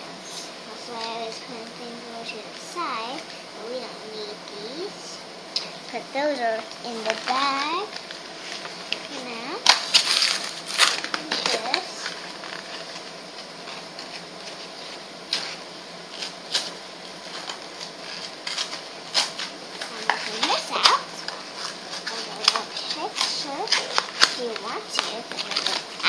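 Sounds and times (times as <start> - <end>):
plastic packaging crinkling: 6.5 - 26.0.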